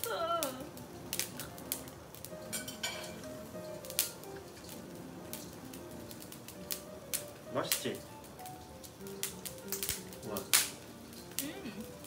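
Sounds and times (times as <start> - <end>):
quiet background music: 0.0 - 12.0
utensils clinking on plates: 2.4 - 3.8.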